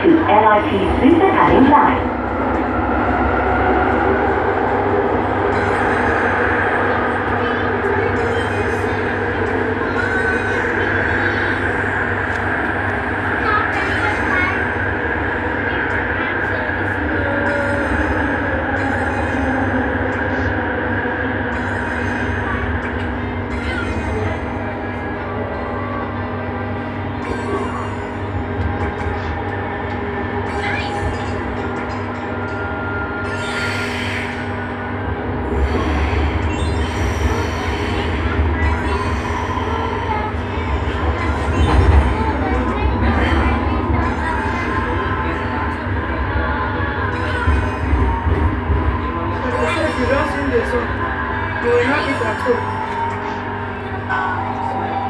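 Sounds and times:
metro train humming: 0.0s - 55.0s.

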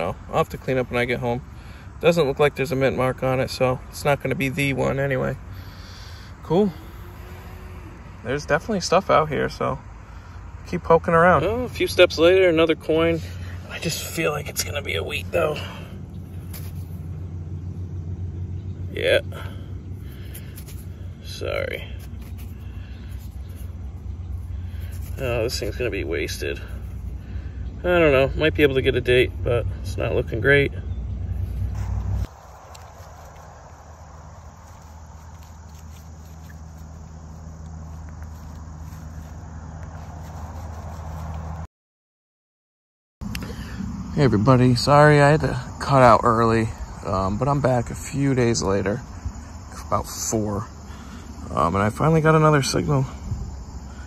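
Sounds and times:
even outdoor hiss: 0.0s - 41.6s, 43.2s - 54.0s
low hum: 13.1s - 41.7s.

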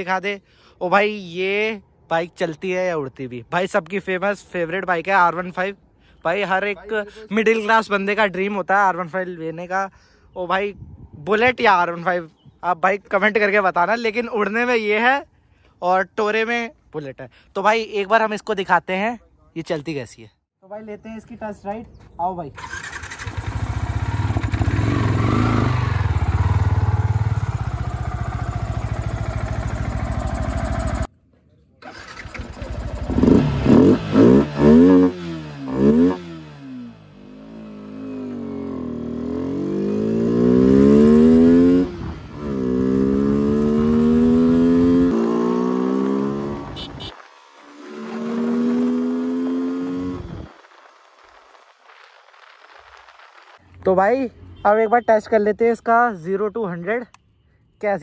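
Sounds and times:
motorcycle engine revving: 22.6s - 31.1s, 31.8s - 50.6s.

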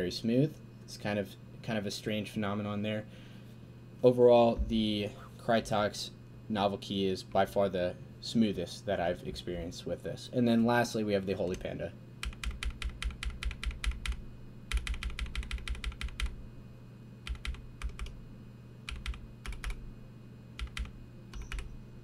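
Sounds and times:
mechanical keyboard keystrokes: 12.2s - 16.4s, 17.3s - 18.2s, 18.9s - 19.8s, 20.6s - 21.7s.

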